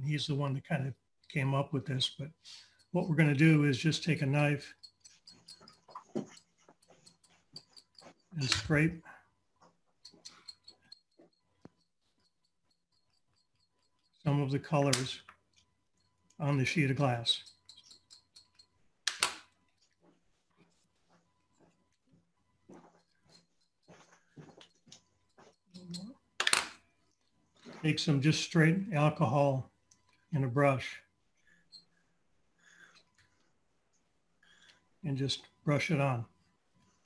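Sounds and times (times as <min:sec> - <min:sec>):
knife blade scraping chalk: 0:04.0 - 0:08.6, 0:10.0 - 0:14.4, 0:17.3 - 0:18.8
small tools clicking on glass: 0:04.0 - 0:08.8, 0:09.9 - 0:16.5, 0:17.3 - 0:20.0, 0:24.6 - 0:27.4.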